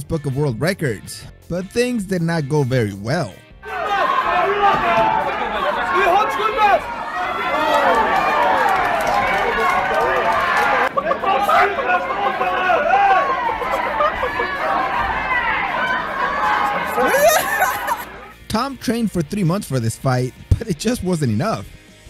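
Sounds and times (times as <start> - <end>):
crowd talking and shouting: 3.6 - 18.4.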